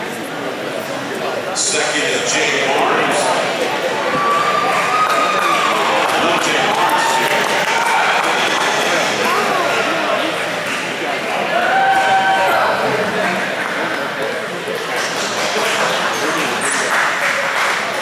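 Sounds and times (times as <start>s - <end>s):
crowd voices: 0.0s - 18.0s
audience applauding: 4.0s - 18.0s.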